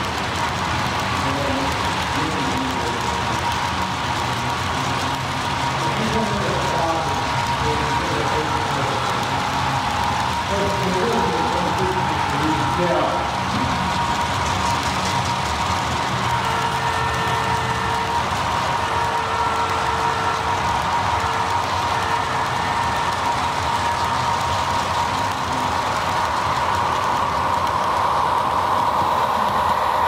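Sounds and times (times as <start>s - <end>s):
locomotive whine: 0.0s - 30.0s
model train rumble and hiss: 0.0s - 30.0s.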